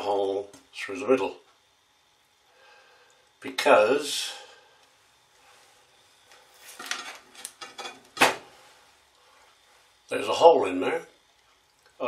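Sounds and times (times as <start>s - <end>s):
hard objects clattering on workbench: 6.7s - 8.5s.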